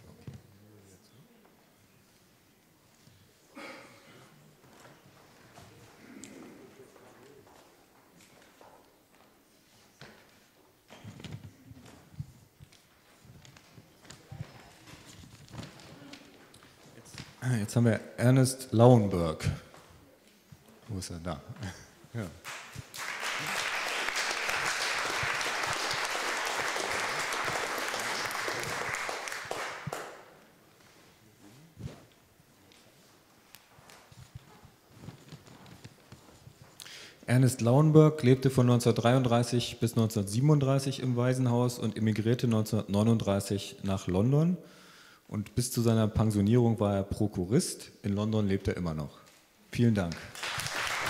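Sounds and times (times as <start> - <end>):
soft rustle: 30.6 - 36.8
light knocks and shuffling: 30.7 - 36.8.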